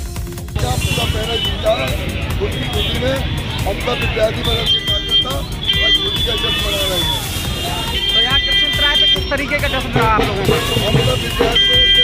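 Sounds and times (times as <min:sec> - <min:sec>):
background music: 0:00.0 - 0:12.0
man speaking: 0:00.6 - 0:07.1
high-pitched tones: 0:00.6 - 0:12.0.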